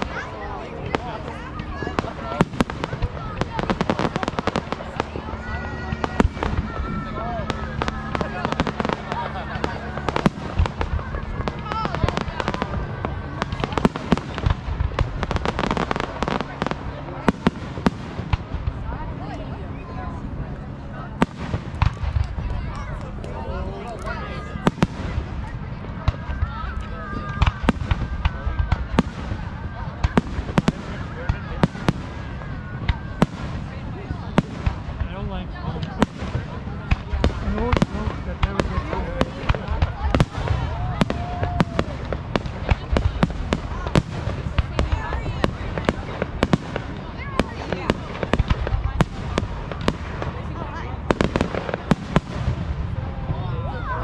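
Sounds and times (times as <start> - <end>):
fireworks bursting: 0.0 - 54.0
people talking: 0.0 - 54.0.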